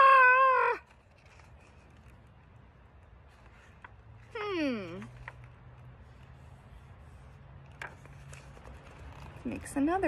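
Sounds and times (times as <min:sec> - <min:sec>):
woman's mock wail: 0:00.0 - 0:00.9.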